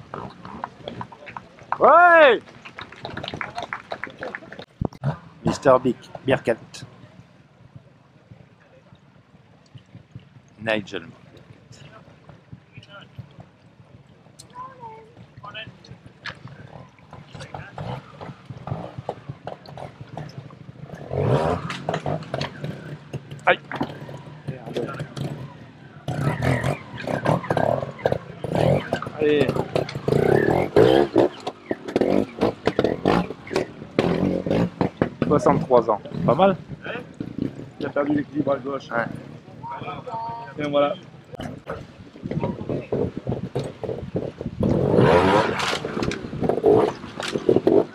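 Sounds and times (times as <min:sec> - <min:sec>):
motorcycle engine running: 0:11.3 - 0:47.9.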